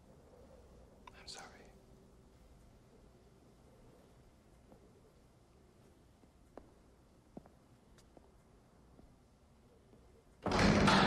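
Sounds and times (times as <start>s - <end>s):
faint whisper: 0.0s - 5.9s.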